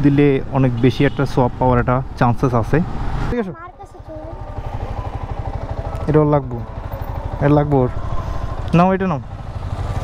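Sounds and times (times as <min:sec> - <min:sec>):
motorcycle engine running at low revs: 0:04.3 - 0:10.0.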